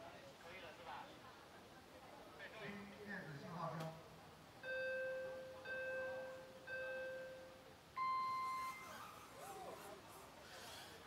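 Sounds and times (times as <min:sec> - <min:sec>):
low countdown beeps: 0:04.6 - 0:08.9.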